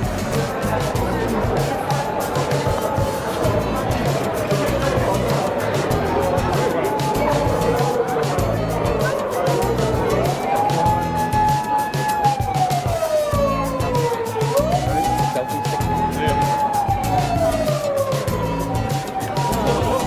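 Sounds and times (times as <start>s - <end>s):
background music: 0.0s - 20.0s
emergency vehicle siren wailing: 0.0s - 20.0s.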